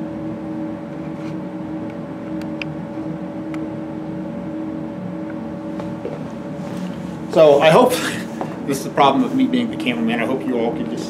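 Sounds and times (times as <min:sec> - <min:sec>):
ventilation hum: 0:00.0 - 0:11.0.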